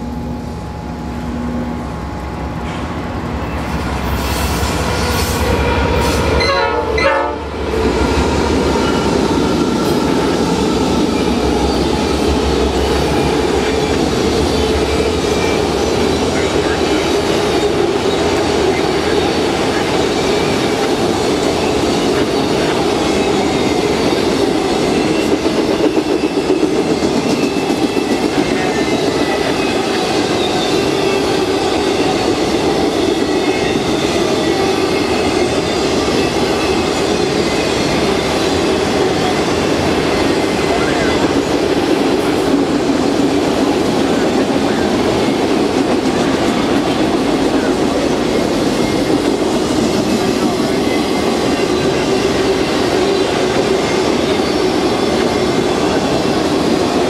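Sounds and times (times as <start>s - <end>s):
train wheels rolling on rail: 0.0s - 57.0s.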